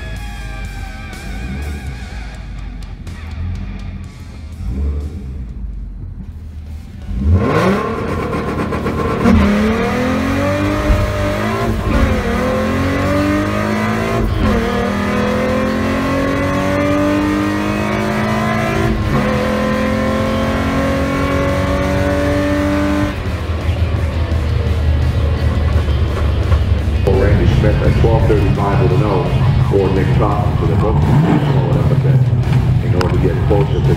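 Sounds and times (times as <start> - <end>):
car engine at full throttle: 0.0 - 33.9.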